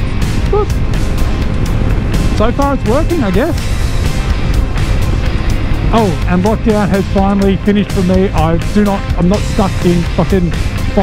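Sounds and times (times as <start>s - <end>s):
motorcycle engine running: 0.0s - 11.0s
wind rushing over microphone: 0.0s - 11.0s.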